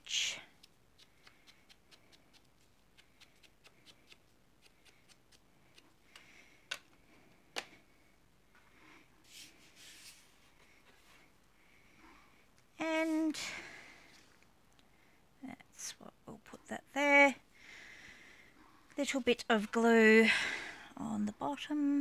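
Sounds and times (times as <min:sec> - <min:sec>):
rubbing sound: 0:09.2 - 0:10.4.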